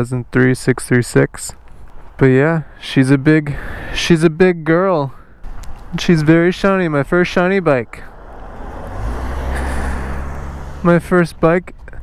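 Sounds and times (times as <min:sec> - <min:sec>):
road noise: 0:00.0 - 0:12.0
bus engine rumble: 0:05.4 - 0:12.0.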